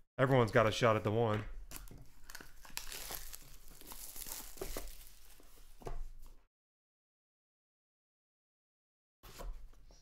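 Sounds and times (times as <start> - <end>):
plastic shrink wrap tearing: 1.7 - 5.4.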